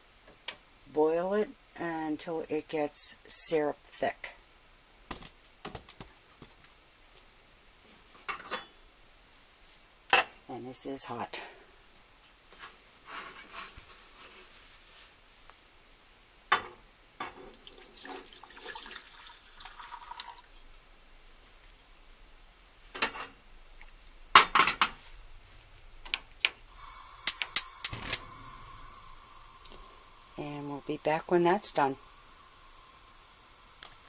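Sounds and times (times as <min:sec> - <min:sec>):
liquid pouring into saucepan: 0:17.5 - 0:20.6
gas hissing: 0:26.6 - 0:34.0
gas stove igniter clicking: 0:27.2 - 0:29.9.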